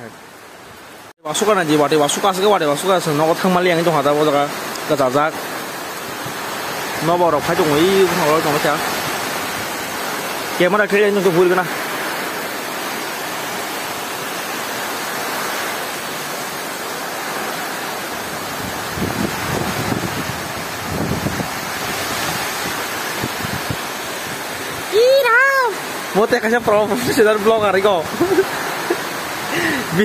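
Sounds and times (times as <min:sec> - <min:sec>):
heavy rain pouring: 0:00.0 - 0:30.0
person speaking: 0:24.9 - 0:30.0.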